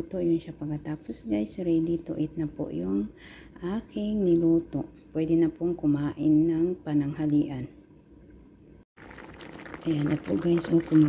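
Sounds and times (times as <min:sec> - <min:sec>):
sauce bubbling in a frying pan: 0:09.0 - 0:11.0.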